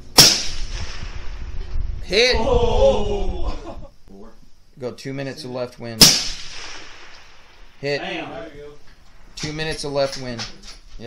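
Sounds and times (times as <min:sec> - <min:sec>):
rifle shot with echo: 0:00.1 - 0:01.4, 0:06.0 - 0:07.8.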